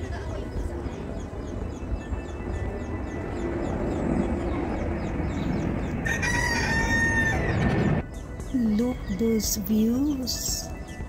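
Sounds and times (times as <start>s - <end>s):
rooster crowing: 6.0s - 7.8s.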